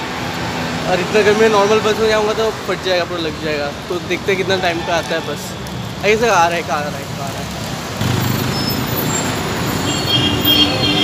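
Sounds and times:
high-pitched brake squeal: 8.2s - 11.0s.

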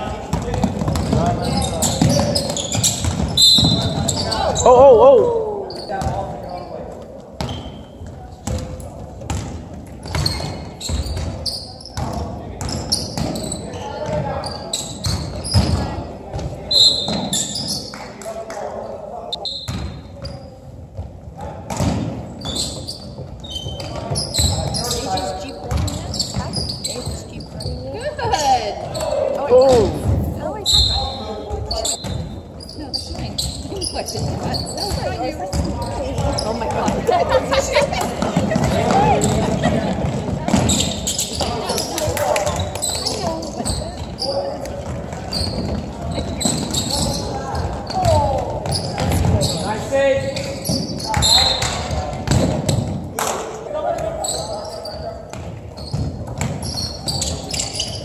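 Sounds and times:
shoe squeaks: 0.9s - 5.0s, 5.6s - 6.8s, 7.4s - 8.7s, 10.0s - 16.0s, 16.6s - 18.0s, 18.9s - 20.7s, 22.2s - 39.8s, 40.5s - 53.0s, 54.0s - 58.0s
basketball bouncing on hardwood: 8.4s - 11.4s.

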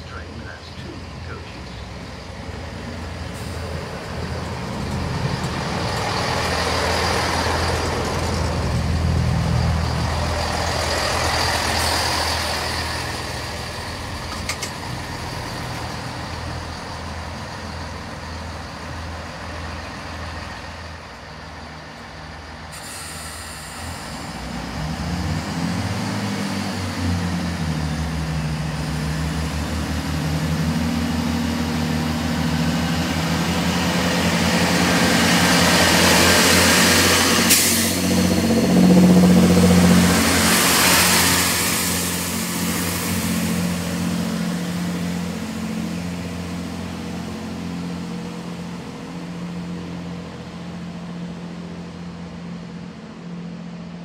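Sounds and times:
wheel and rail noise: 0.0s - 25.8s
diesel train engines revving: 0.0s - 54.0s.

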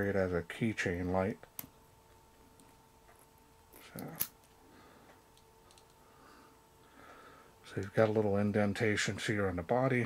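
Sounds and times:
faint handling noise: 1.4s - 6.0s, 7.7s - 8.4s.

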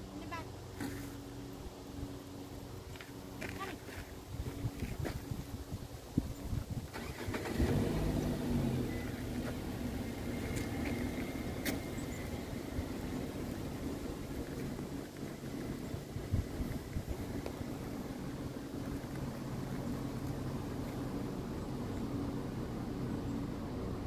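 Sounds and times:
car engine starting and idling: 6.8s - 24.0s.

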